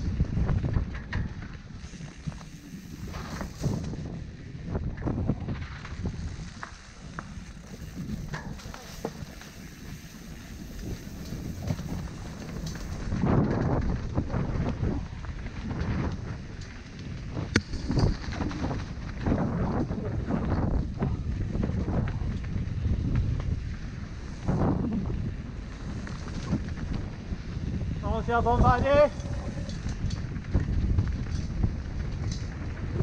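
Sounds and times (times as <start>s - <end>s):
tyres rumbling over dirt: 0.0s - 22.8s
bike rattling: 0.0s - 33.0s
wind on microphone: 0.0s - 33.0s.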